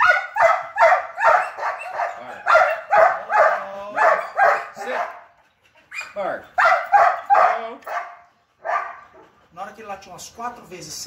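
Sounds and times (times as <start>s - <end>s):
dog barking sharply: 0.0s - 5.2s, 6.0s - 9.0s.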